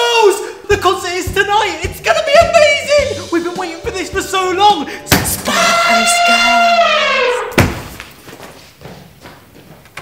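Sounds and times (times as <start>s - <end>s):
elephant trumpeting: 5.4s - 7.6s
heavy thud: 7.6s - 8.1s.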